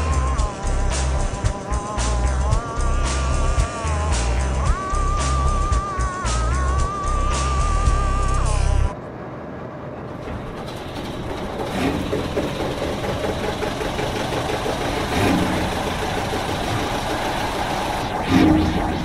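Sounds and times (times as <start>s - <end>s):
airliner cabin engine noise: 0.0s - 19.0s.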